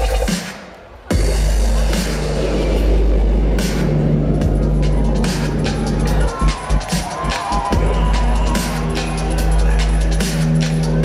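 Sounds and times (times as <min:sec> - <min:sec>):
loud dubstep over sound system: 0:00.0 - 0:11.0.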